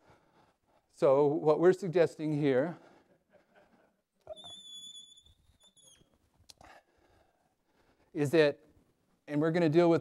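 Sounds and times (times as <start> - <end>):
high-pitched squeak: 4.3 - 6.1.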